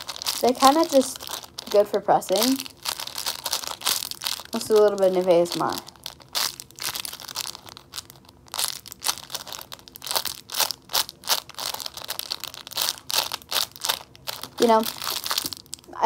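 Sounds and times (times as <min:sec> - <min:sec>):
plastic bag crinkling: 0:00.0 - 0:16.0.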